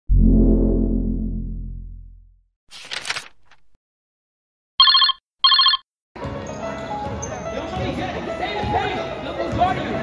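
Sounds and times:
electronic ringing tone: 0:04.8 - 0:05.8
music: 0:06.2 - 0:10.0.

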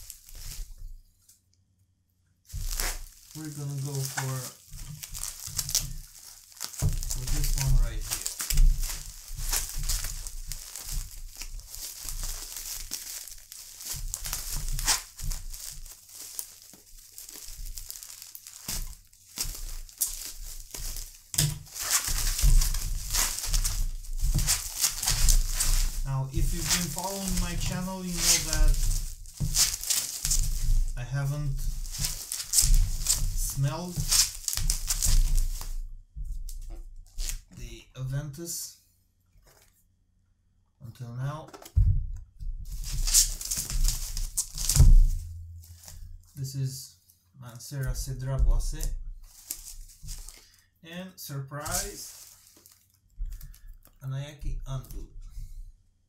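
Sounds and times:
scissors cutting bubble wrap: 0:00.0 - 0:00.7, 0:02.5 - 0:35.8, 0:36.5 - 0:37.4, 0:42.7 - 0:46.0, 0:49.3 - 0:50.5
bubble wrap crinkling: 0:00.0 - 0:01.4, 0:02.5 - 0:37.6, 0:39.4 - 0:39.9, 0:41.5 - 0:55.7.

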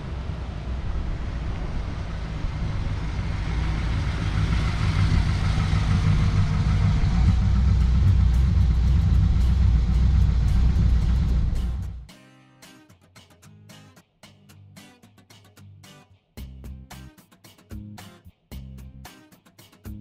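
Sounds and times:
car engine approaching: 0:00.0 - 0:12.1.

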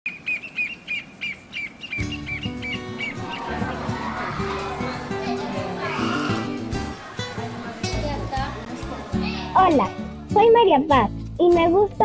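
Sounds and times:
small bird chirping: 0:00.1 - 0:03.3.

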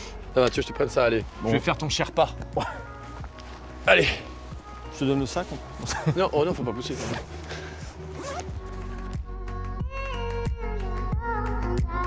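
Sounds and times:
background music sustained notes: 0:00.0 - 0:12.0
backpack fabric rustling: 0:00.2 - 0:09.3.

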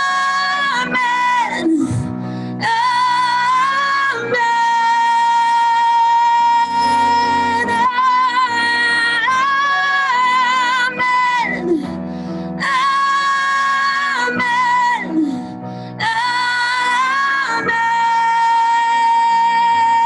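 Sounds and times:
keyboard accompaniment: 0:00.0 - 0:20.0
women singing worship song: 0:00.0 - 0:20.0.

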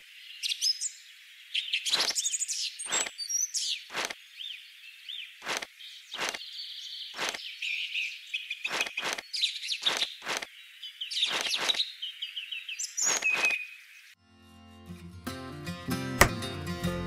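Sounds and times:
birdsong chirping: 0:00.0 - 0:14.2
acoustic guitar music: 0:14.2 - 0:17.0.

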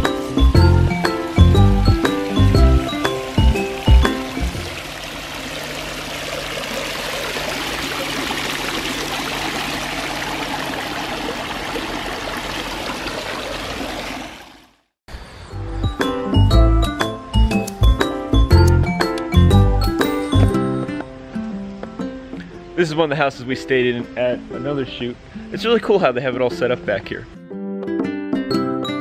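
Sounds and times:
background music with a beat: 0:00.0 - 0:04.6, 0:15.8 - 0:22.6, 0:27.6 - 0:29.0
fountain water splashing: 0:00.0 - 0:14.8.

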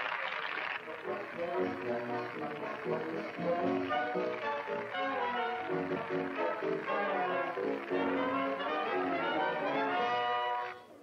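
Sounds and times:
audience applauding: 0:00.0 - 0:10.8
band music: 0:00.9 - 0:10.8.

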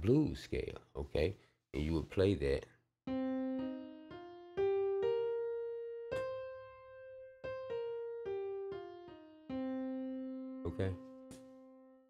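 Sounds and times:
piano scale notes: 0:03.1 - 0:12.0.

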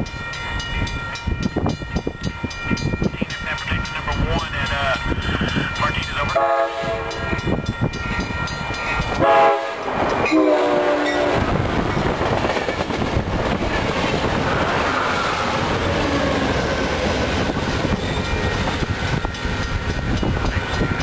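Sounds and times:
train wheels rumbling on rails: 0:00.0 - 0:21.0
train horn blasts: 0:06.3 - 0:07.4, 0:09.2 - 0:11.6.

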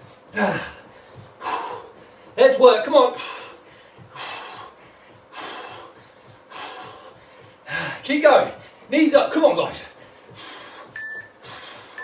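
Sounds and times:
man breathing hard: 0:00.0 - 0:02.4, 0:03.1 - 0:08.9, 0:09.8 - 0:12.0.

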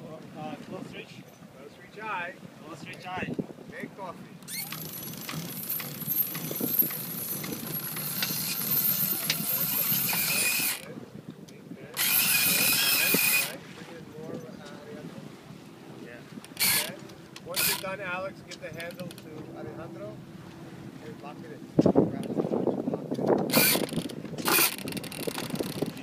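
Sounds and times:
winch ratcheting clicks: 0:04.4 - 0:10.9, 0:12.0 - 0:13.6, 0:16.4 - 0:19.4, 0:23.2 - 0:26.0.

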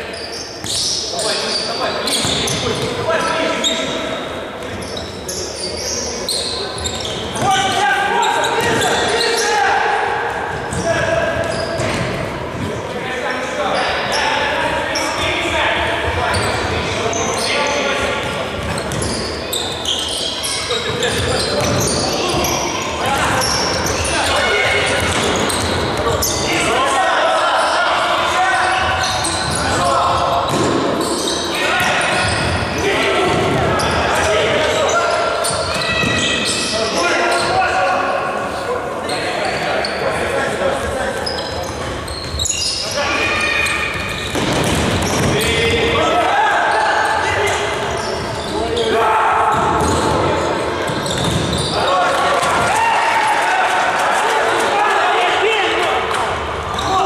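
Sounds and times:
players shouting: 0:45.0 - 0:50.6, 0:51.6 - 0:57.0.

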